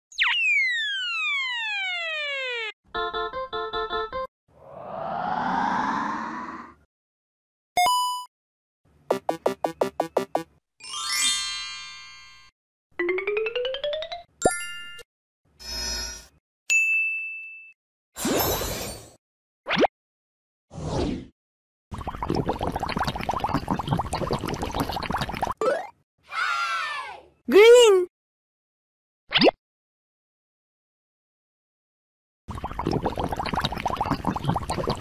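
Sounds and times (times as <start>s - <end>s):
brief whoosh: 4.6s - 6.8s
synthesized tone sliding down: 4.6s - 6.8s
high bell-like ding: 16.7s - 17.7s.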